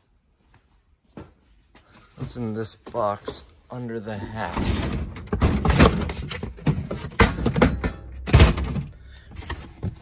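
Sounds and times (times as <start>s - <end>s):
boxes thumping and scraping: 1.2s - 10.0s.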